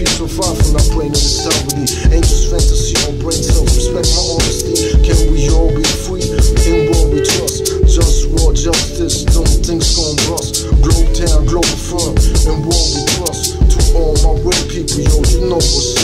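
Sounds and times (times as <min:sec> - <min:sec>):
hip hop beat with heavy bass: 0:00.0 - 0:16.0
rapping: 0:00.0 - 0:16.0.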